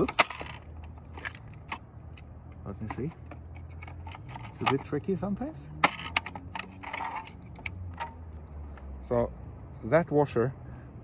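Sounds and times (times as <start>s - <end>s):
faint handling clicks and taps: 0.0s - 5.2s.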